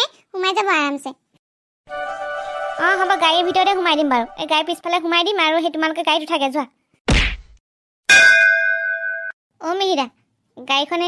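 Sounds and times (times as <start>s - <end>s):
metallic clang ringing: 8.1s - 9.3s.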